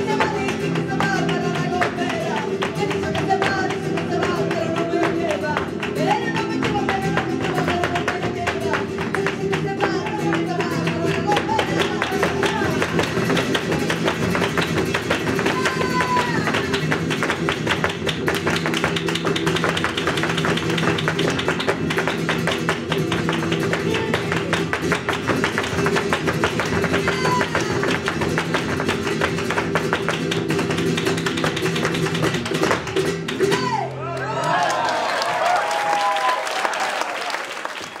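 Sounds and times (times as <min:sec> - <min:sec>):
heel and toe stamping on wooden stage: 0:00.0 - 0:33.9
strummed flamenco guitars: 0:00.0 - 0:34.4
hand-clapping: 0:00.0 - 0:38.0
voices cheering and shouting: 0:33.6 - 0:37.2.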